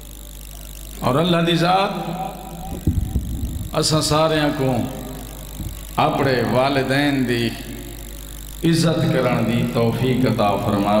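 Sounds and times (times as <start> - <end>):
steady low hum: 0.0 - 11.0
man speaking amplified: 1.0 - 2.8, 3.7 - 5.4, 6.0 - 8.0, 8.6 - 11.0
microphone handling thumps: 2.7 - 4.2, 5.4 - 5.9.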